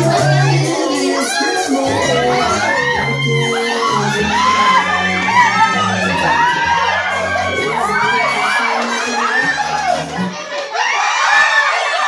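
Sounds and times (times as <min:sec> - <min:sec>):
music with bass: 0:00.0 - 0:10.4
crowd shouting and cheering: 0:00.0 - 0:12.0.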